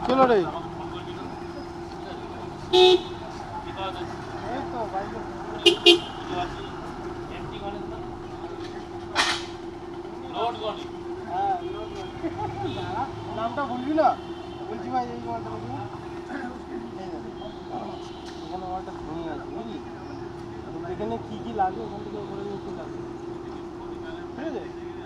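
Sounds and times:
street traffic: 0.0 - 25.0
vehicle horn toots: 2.1 - 3.4, 5.5 - 6.9, 8.3 - 15.4, 16.0 - 19.0, 21.2 - 23.1.

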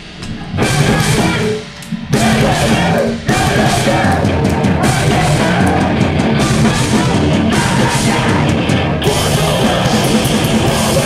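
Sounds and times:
live metal band playing: 0.0 - 11.0.

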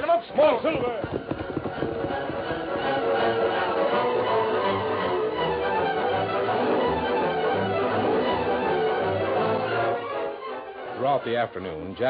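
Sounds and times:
orchestral strings music: 1.4 - 12.0.

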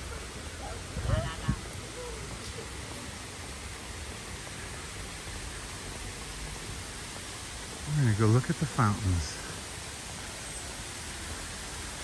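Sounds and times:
even hiss: 0.0 - 12.0.

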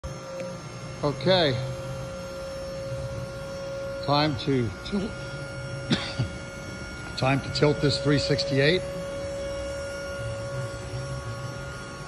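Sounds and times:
constant mid-pitched tone: 0.0 - 12.0
steady indoor hum: 0.0 - 12.0.

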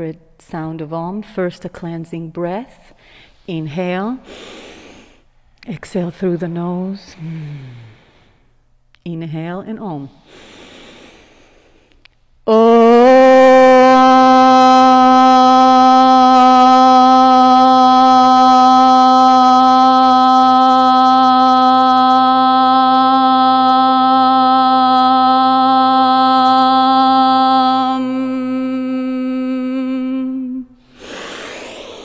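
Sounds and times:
breath: 2.9 - 3.5, 4.2 - 5.6, 7.0 - 8.7, 10.2 - 12.1, 30.8 - 32.0
woman chanting om: 12.5 - 32.0.

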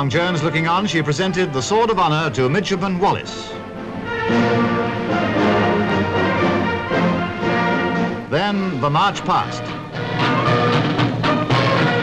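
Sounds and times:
orchestral music: 0.0 - 12.0
brass playing held chords: 3.5 - 9.0, 9.6 - 12.0.

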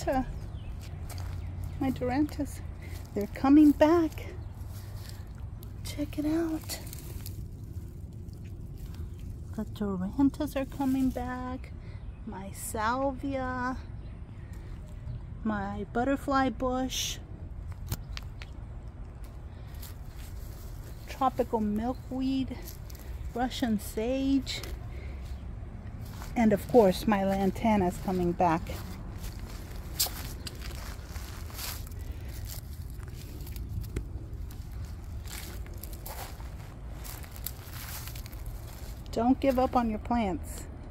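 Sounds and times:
steady low rumble: 0.0 - 40.9
footsteps crunching on dry leaves: 0.1 - 9.5, 10.6 - 11.4, 19.2 - 40.2.

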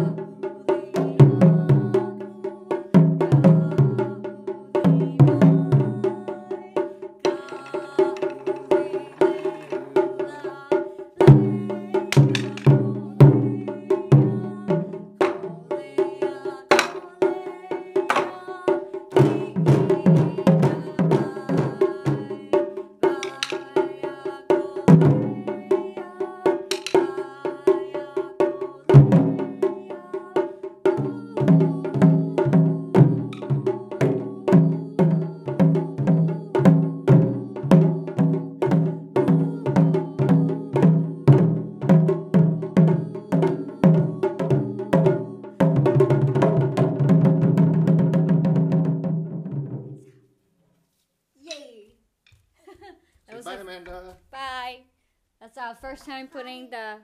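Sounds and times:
taiko drums beating: 0.0 - 10.5, 11.2 - 16.0, 16.7 - 17.2, 19.1 - 24.1, 26.6 - 27.8, 28.4 - 29.9, 30.9 - 49.9.

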